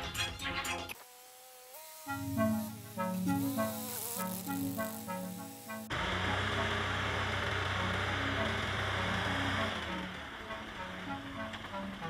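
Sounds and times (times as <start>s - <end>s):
background music: 0.0s - 1.0s, 2.0s - 12.0s
tractor engine running: 5.5s - 12.0s.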